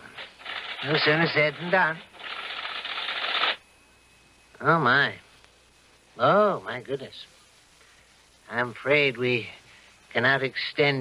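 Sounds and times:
typewriter mechanical clatter: 0.4 - 1.2, 2.2 - 3.6.

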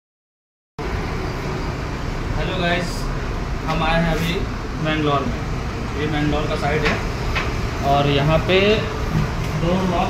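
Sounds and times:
road traffic noise: 0.8 - 10.0.

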